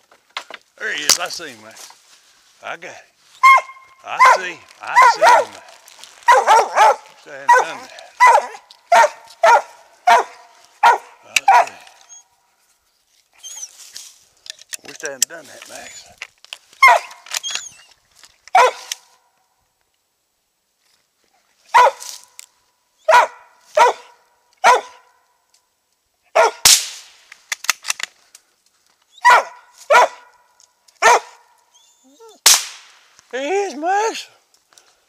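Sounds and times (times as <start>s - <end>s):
dog barking: 3.4s - 12.0s, 16.8s - 17.2s, 18.5s - 18.9s, 21.7s - 22.1s, 23.1s - 25.2s, 26.3s - 26.6s, 29.2s - 30.4s, 31.0s - 31.6s
sharp cracks: 26.4s - 28.5s, 32.4s - 33.3s.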